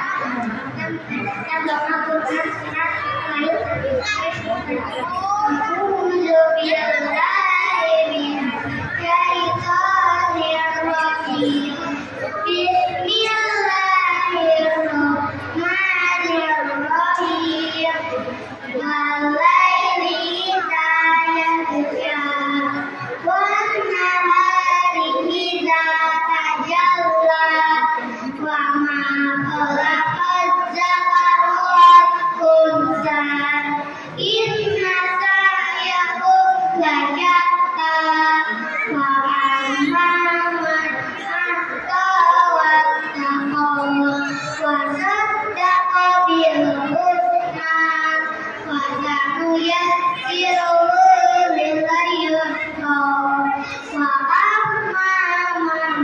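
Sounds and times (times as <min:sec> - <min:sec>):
children singing: 0:00.0 - 0:56.0.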